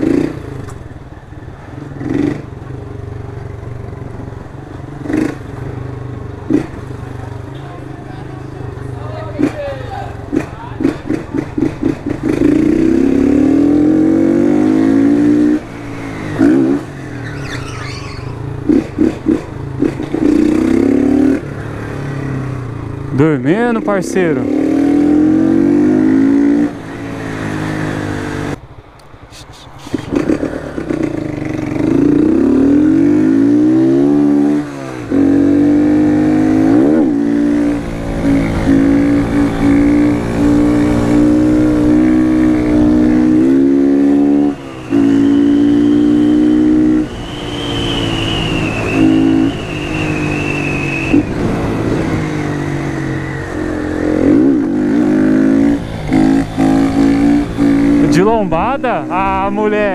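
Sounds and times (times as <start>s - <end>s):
motorcycle engine revving: 0.0s - 0.9s, 1.7s - 28.6s, 30.0s - 59.9s.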